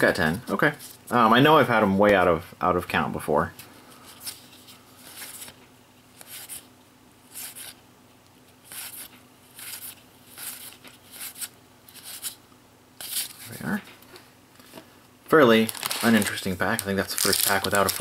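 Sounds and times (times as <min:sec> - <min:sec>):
cards swishing against cards: 0:06.2 - 0:06.7, 0:07.3 - 0:07.8, 0:08.6 - 0:12.4, 0:13.0 - 0:13.6.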